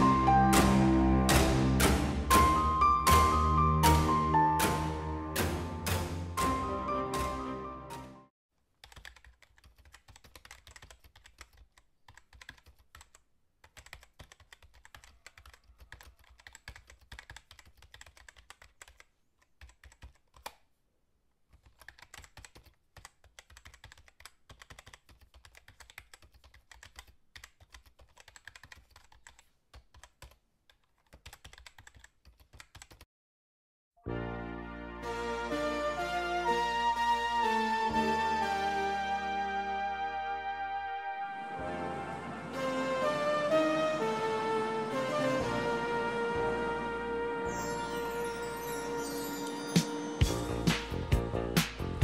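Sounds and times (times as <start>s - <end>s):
faint keyboard typing: 8.7s - 20.8s, 21.5s - 33.1s.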